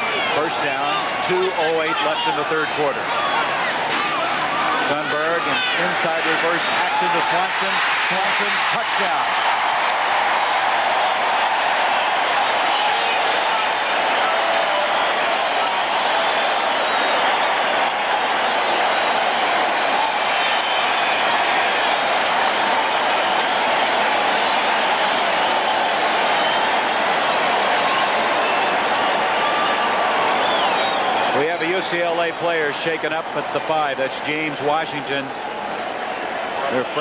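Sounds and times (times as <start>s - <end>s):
stadium crowd cheering: 0.0s - 37.0s
crowd clapping: 5.6s - 34.1s.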